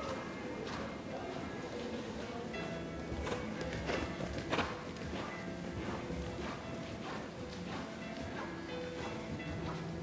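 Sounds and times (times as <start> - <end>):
horse hoofbeats on sand: 0.0 - 2.0, 3.0 - 10.0
background music: 0.0 - 10.0.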